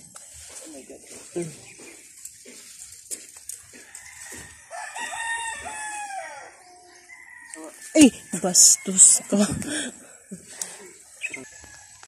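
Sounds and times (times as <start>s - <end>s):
rooster crowing: 3.7s - 9.4s.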